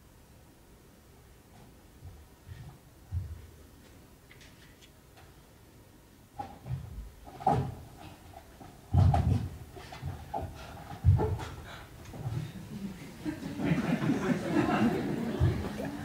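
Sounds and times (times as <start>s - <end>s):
body and feet thumping on stage: 2.0s - 3.5s, 6.4s - 12.6s, 14.6s - 15.8s.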